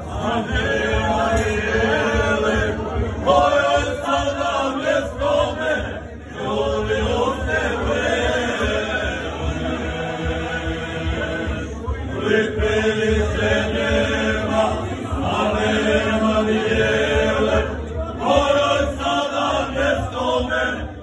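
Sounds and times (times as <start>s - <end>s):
men singing unaccompanied: 0.0s - 21.0s.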